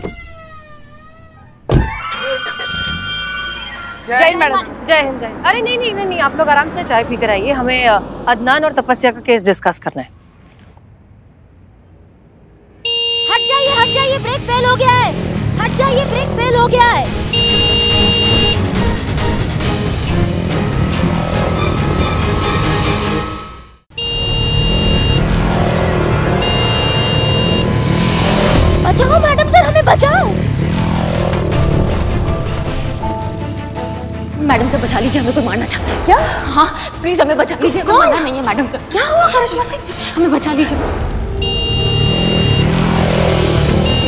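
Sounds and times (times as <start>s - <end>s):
motorcycle horn sounding: 12.8s - 14.3s, 17.2s - 18.7s, 23.9s - 27.8s, 41.3s - 42.8s, 43.7s - 44.0s
motorcycle engine running: 28.4s - 35.6s.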